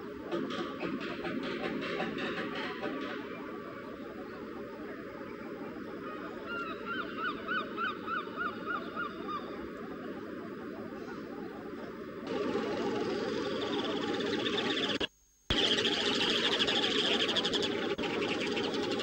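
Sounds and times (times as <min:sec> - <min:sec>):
gull calling: 0:12.3 - 0:19.0.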